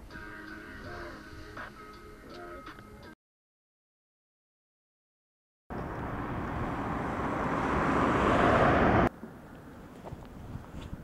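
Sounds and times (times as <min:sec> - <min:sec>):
rushing outdoor noise: 0:05.7 - 0:11.0.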